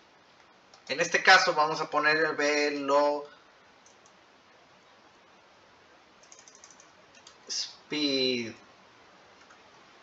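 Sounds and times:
faint room hiss: 0:00.0 - 0:10.0
faint keyboard keystrokes: 0:06.2 - 0:07.4.

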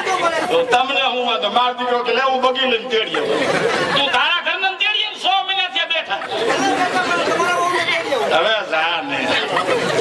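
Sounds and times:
men talking over one another: 0:00.0 - 0:10.0.

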